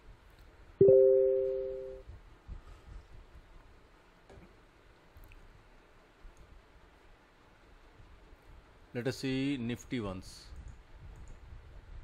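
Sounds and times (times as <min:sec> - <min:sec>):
electronic notification chime: 0:00.8 - 0:02.0.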